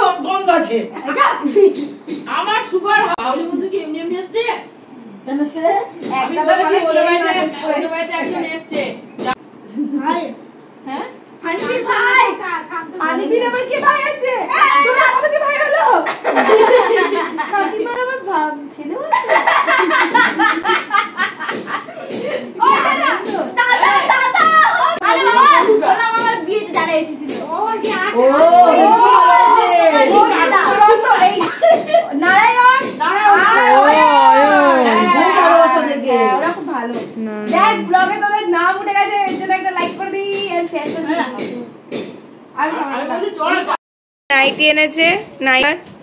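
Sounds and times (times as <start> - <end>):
people talking: 22.0 - 41.7, 44.3 - 45.8
child's voice: 33.4 - 35.4.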